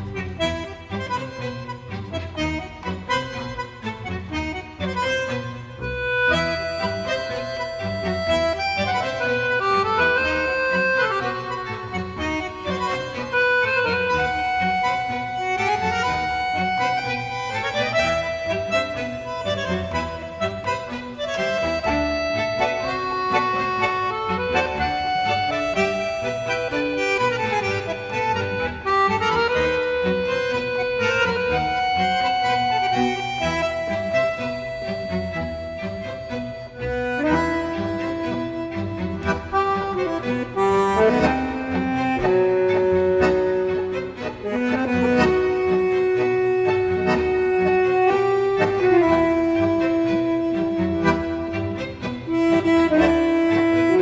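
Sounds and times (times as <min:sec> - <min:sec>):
accordion melody: 0:00.0 - 0:54.0
tango band accompaniment: 0:00.0 - 0:54.0.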